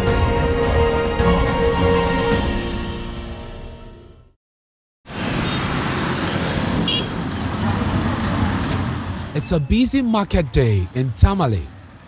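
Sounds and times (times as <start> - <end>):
theme music: 0.0 - 4.4
traffic noise: 5.1 - 12.0.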